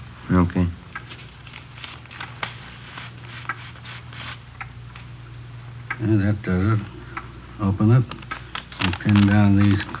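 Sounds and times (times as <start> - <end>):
low recording hum: 0.0 - 10.0
paper rustling and crackling: 1.1 - 4.4, 8.3 - 10.0.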